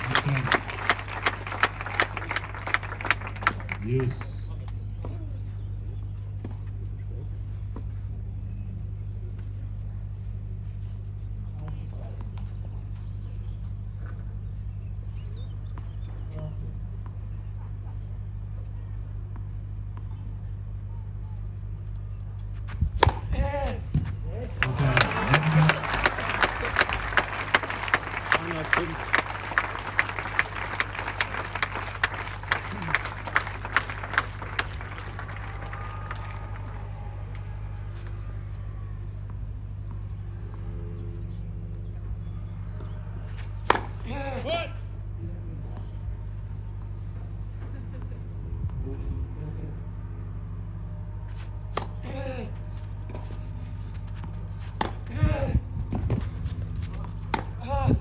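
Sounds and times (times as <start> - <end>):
loud single claps: 0.0 - 3.8, 24.6 - 36.8
crowd applauding: 0.0 - 4.4, 24.5 - 37.5.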